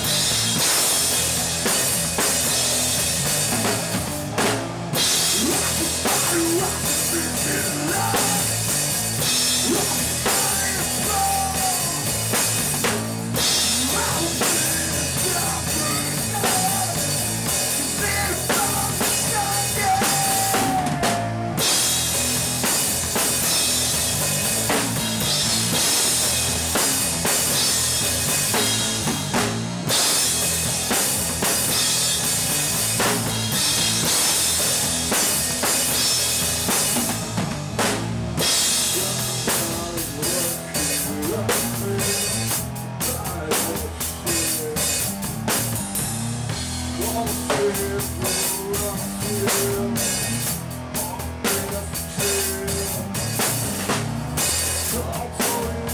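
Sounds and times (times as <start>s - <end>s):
bass guitar: 0.0s - 55.9s
drums and cymbals crashing: 0.0s - 55.9s
electric guitar: 0.0s - 55.9s
heavy rock band playing live: 0.0s - 55.9s.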